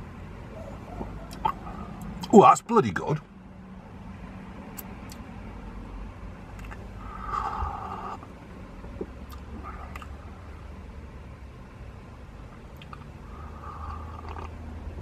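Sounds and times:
low vehicle rumble: 0.0 - 15.0
slurping sip of hot drink: 13.4 - 14.6.

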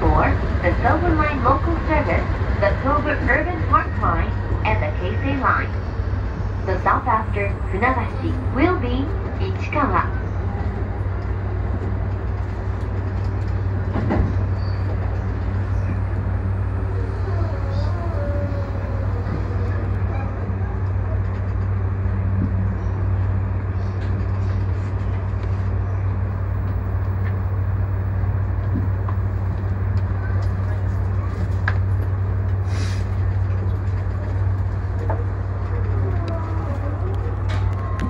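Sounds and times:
electric train hum and rumble: 0.0 - 38.0.

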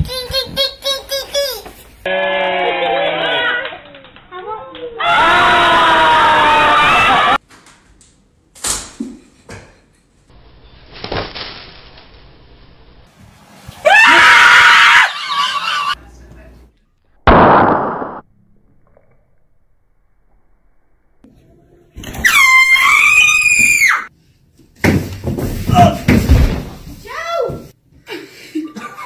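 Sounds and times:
people screaming: 2.1 - 3.7, 5.0 - 7.4, 13.8 - 16.0, 22.3 - 24.1.

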